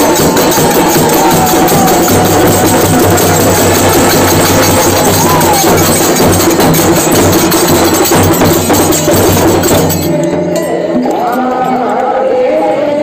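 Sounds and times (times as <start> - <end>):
thin wavering melody: 0.0 - 7.4
rapid cymbal or tambourine strokes: 0.0 - 10.1
drums: 0.0 - 11.6
live folk music: 0.0 - 12.6.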